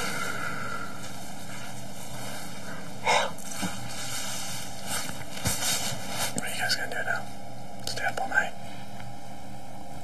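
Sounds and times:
steady hissing hum: 0:00.0 - 0:10.0.

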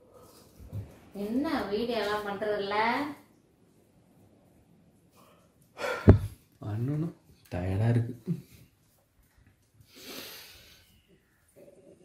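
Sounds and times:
man gasping for breath: 0:05.8 - 0:06.4.

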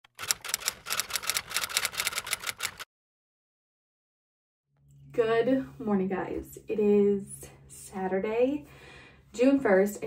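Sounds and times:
typewriter key clicks: 0:00.1 - 0:02.8.

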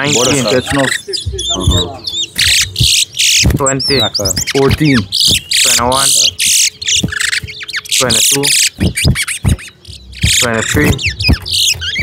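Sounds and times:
finch twittering song: 0:00.0 - 0:12.0.

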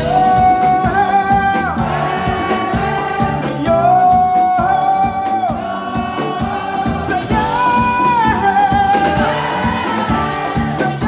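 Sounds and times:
drum kit beat: 0:00.0 - 0:11.0
keyboard: 0:00.0 - 0:11.0
saxophone: 0:00.0 - 0:11.0.

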